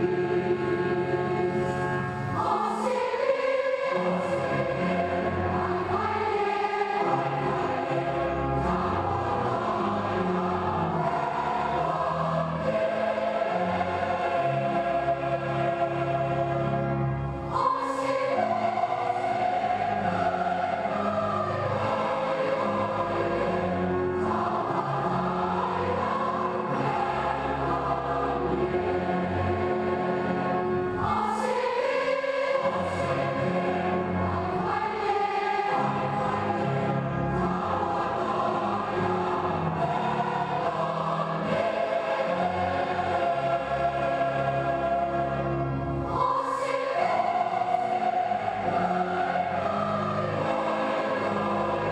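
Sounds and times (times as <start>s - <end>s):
choir singing sustained chords: 0.0s - 51.9s.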